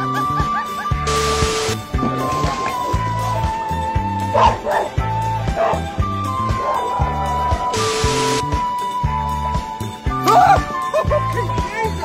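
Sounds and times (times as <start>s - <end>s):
background music with beat: 0.0s - 12.0s.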